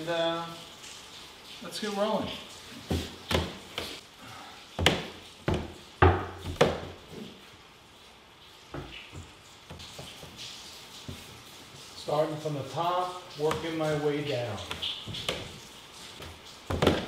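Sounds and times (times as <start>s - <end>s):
footsteps on wooden stairs: 2.8s - 4.0s, 4.8s - 7.3s, 16.2s - 17.0s.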